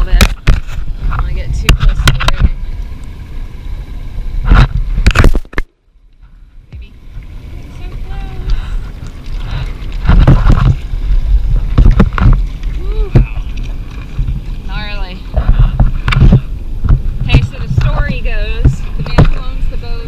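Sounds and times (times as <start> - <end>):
wind buffeting microphone: 0.0 - 5.4, 6.6 - 20.0
heavy low rumble: 0.0 - 20.0
water sloshing around boat: 0.0 - 20.0.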